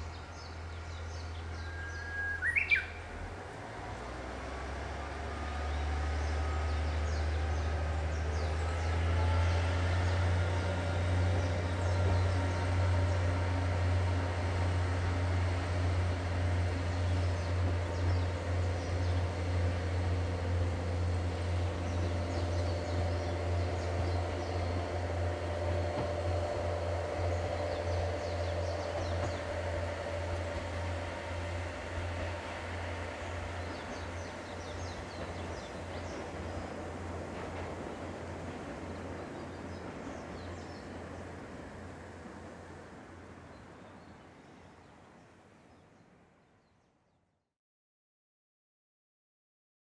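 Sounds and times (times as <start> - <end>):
diesel train engine droning: 0.0 - 46.2.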